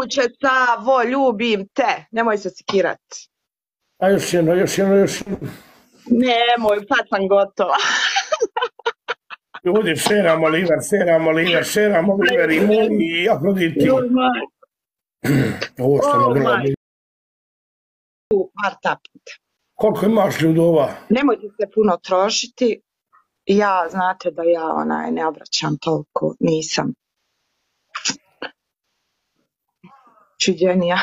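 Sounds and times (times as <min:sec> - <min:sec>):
person clearing their throat: 0:15.2 - 0:15.8.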